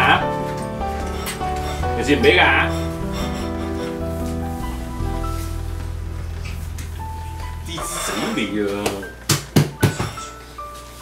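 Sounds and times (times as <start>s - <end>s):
person's voice: 2.0s - 2.8s, 7.6s - 9.2s.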